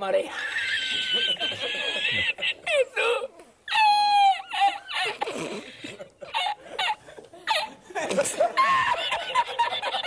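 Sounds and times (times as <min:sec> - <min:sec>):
man laughing hard: 0:00.8 - 0:02.8, 0:06.2 - 0:10.0.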